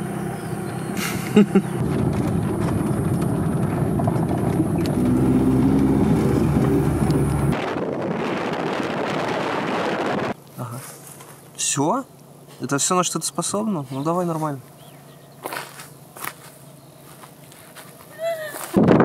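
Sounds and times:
car engine from inside cabin: 0:00.0 - 0:07.6
road noise rushing: 0:00.0 - 0:11.1.

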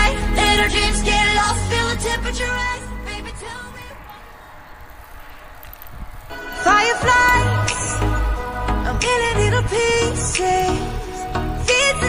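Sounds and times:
bicycle road noise: 0:00.0 - 0:12.0
wind noise: 0:00.0 - 0:12.0.

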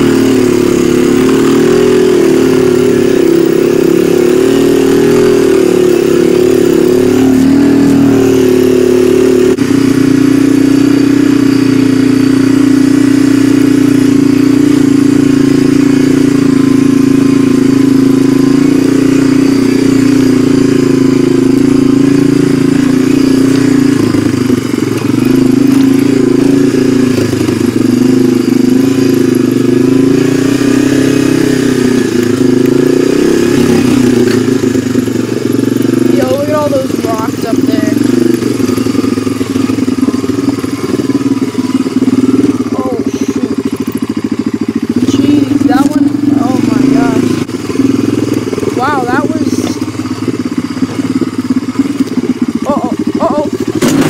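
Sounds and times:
quad bike engine running: 0:00.0 - 0:54.0.

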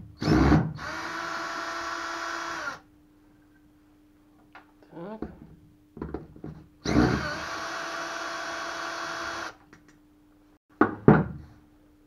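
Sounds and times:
cordless drill running: 0:00.2 - 0:02.8, 0:06.8 - 0:09.6.

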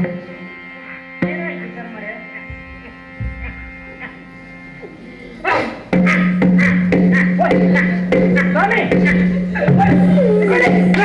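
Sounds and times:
drum strokes: 0:02.4 - 0:05.0, 0:05.6 - 0:11.0
voice gliding in pitch: 0:09.4 - 0:11.0.

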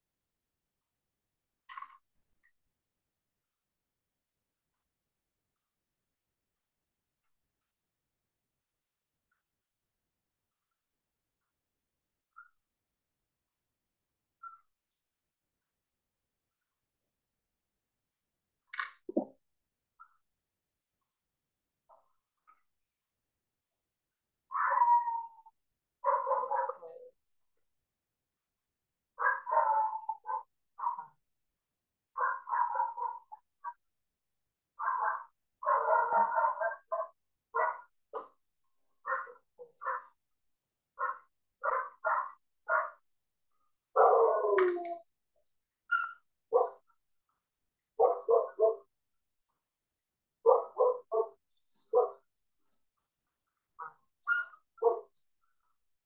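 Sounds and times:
dog barking: 0:26.0 - 0:27.1, 0:29.2 - 0:31.2, 0:32.2 - 0:33.8, 0:34.8 - 0:38.4, 0:39.0 - 0:40.2, 0:41.0 - 0:43.1, 0:43.9 - 0:45.0, 0:45.9 - 0:46.9, 0:48.0 - 0:48.9, 0:50.4 - 0:52.3, 0:53.8 - 0:55.2.

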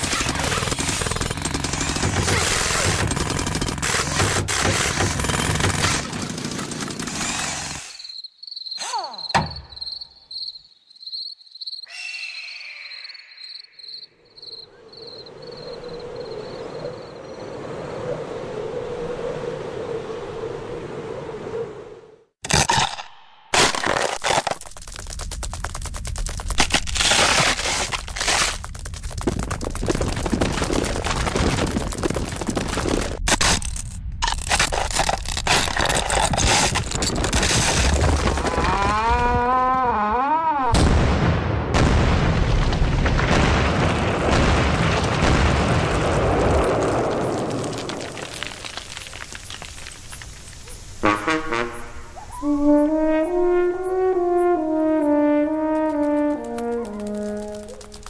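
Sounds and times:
dense crackling noise: 0:23.6 - 0:40.0, 0:40.7 - 0:52.2, 0:55.4 - 0:58.0.

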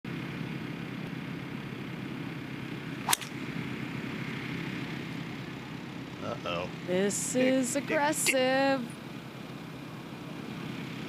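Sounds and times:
golf club striking ball: 0:03.0 - 0:03.6.

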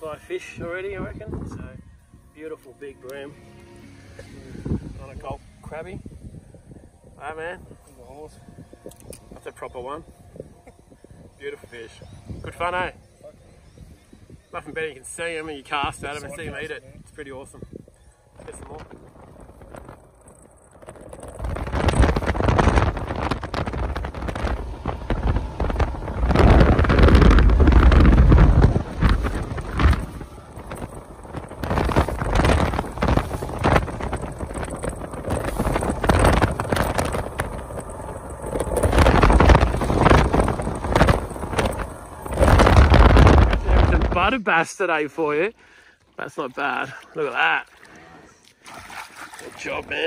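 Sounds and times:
wind buffeting microphone: 0:00.0 - 0:03.3, 0:03.9 - 0:45.5
water rushing beneath boat: 0:18.4 - 0:45.0, 0:45.6 - 0:50.0.

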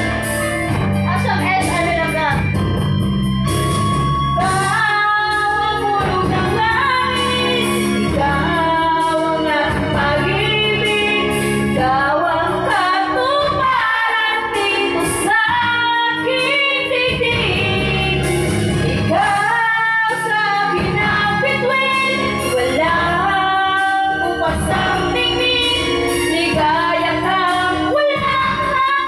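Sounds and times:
music backing track: 0:00.0 - 0:29.0
woman singing karaoke: 0:00.7 - 0:02.6, 0:04.4 - 0:29.0.

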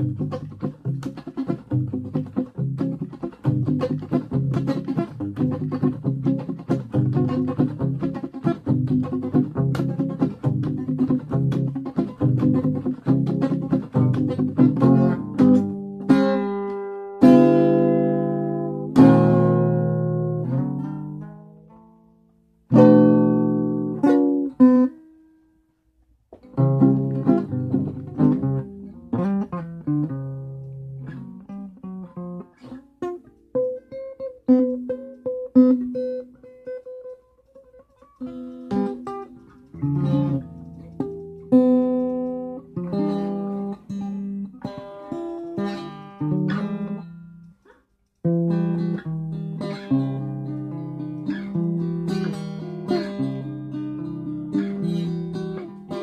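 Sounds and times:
guitar plucked and strummed: 0:00.0 - 0:56.0.

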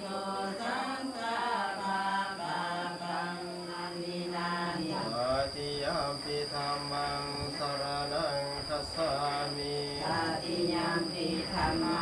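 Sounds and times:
men chanting in monotone: 0:00.0 - 0:12.0.

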